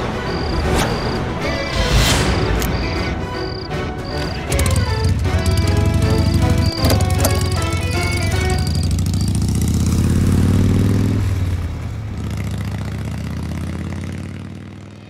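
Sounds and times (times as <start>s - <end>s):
background music: 0.0s - 9.3s
motorcycle engine revving: 4.0s - 15.0s.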